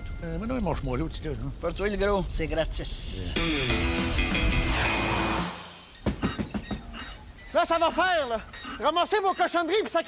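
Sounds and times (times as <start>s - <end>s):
music: 3.4s - 5.7s
knocking on a door: 6.0s - 6.9s.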